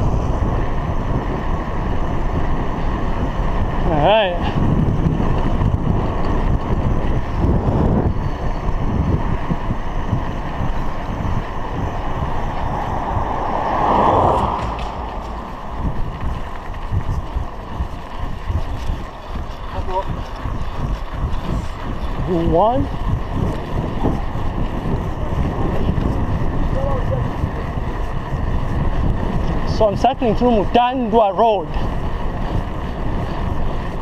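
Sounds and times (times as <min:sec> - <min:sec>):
bicycle tyre road rumble: 0:00.0 - 0:34.0
wind buffeting microphone: 0:00.0 - 0:34.0
car passing: 0:09.0 - 0:26.7.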